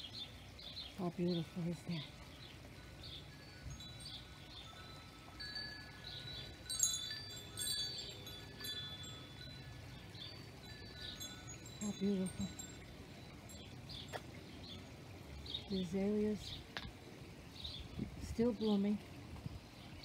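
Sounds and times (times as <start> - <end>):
bird chirping: 0.0 - 16.9, 17.5 - 18.8
wind chimes ringing: 2.6 - 15.7.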